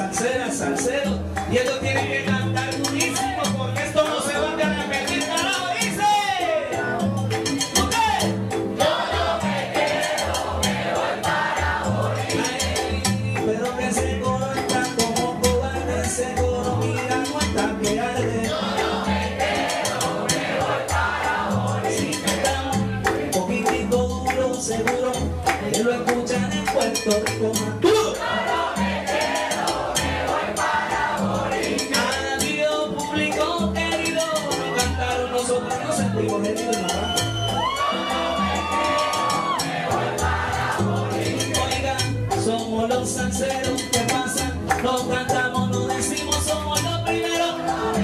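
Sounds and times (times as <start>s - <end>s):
man singing lead: 0.0s - 7.0s, 12.3s - 19.1s, 21.8s - 28.6s, 31.5s - 39.6s, 41.1s - 48.0s
hand percussion: 0.0s - 48.0s
piano: 0.0s - 48.0s
salsa band playing: 0.0s - 48.0s.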